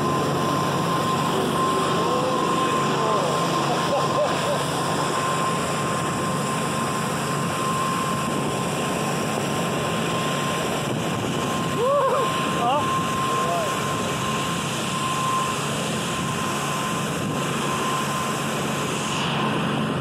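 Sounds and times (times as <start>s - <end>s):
motorboat engine drone: 0.0s - 20.0s
rushing wind: 0.0s - 20.0s
thin high whine: 0.0s - 20.0s.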